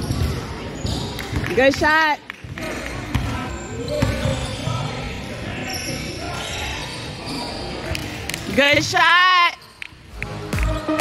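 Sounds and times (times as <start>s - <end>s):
voices of players and spectators: 0.0s - 11.0s.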